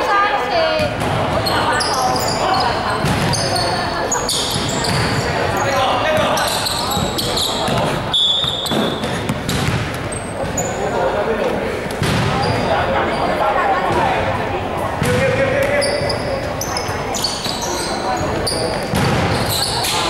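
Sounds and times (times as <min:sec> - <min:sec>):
players' voices echoing: 0:00.0 - 0:20.0
sneakers squeaking: 0:00.8 - 0:14.2, 0:15.0 - 0:20.0
basketball dribbling on gym floor: 0:06.2 - 0:10.1.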